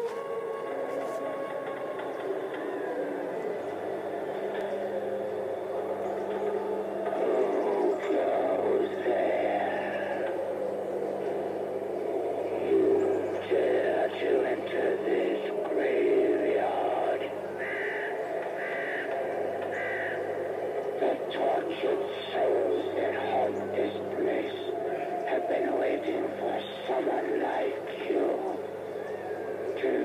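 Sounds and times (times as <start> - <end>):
steady low hum: 0.0 - 30.0
recorded voice through small speaker: 7.0 - 10.4, 12.6 - 17.4, 21.0 - 28.6, 29.7 - 30.0.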